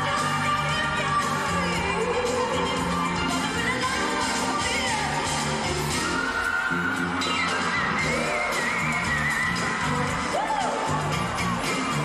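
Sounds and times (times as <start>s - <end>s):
live pop band: 0.0s - 12.0s.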